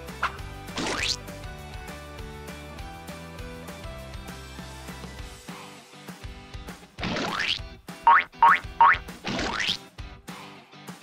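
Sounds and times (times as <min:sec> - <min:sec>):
light background music: 0:00.0 - 0:11.0
cartoon boing sounds: 0:07.0 - 0:09.8.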